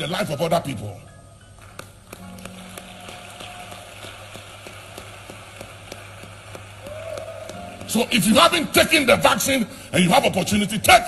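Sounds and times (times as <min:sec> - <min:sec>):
congregation applauding: 0:01.6 - 0:09.2.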